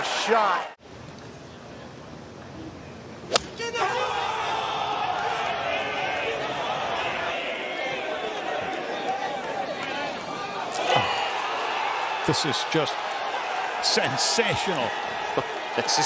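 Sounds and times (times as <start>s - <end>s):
golf club striking ball: 3.3s - 3.6s
crowd chatter: 4.1s - 16.0s.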